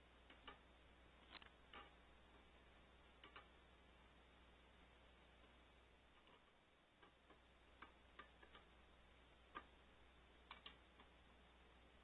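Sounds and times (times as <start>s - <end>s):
low steady hum: 0.0s - 12.0s
faint clicks and taps: 0.2s - 3.6s, 5.3s - 11.5s.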